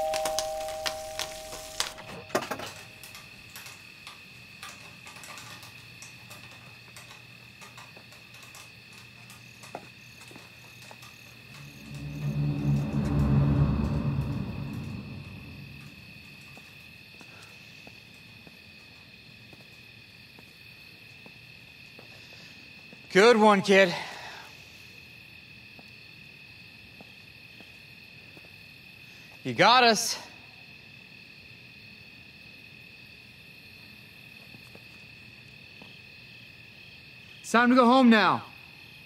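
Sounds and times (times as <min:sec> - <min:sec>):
doorbell chime: 0:00.0 - 0:02.3
thin sustained high tone: 0:00.0 - 0:02.4, 0:11.5 - 0:16.5
horror film score: 0:10.7 - 0:17.4
low drone: 0:11.3 - 0:16.7.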